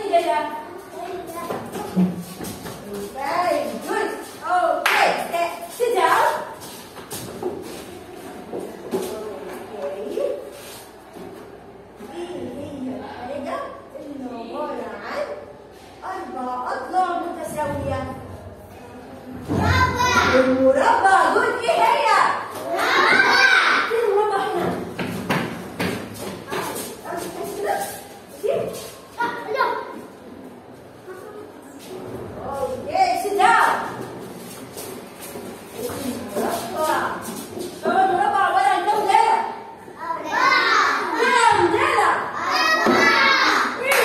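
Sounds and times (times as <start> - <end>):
young children calling out: 42.3 - 43.8.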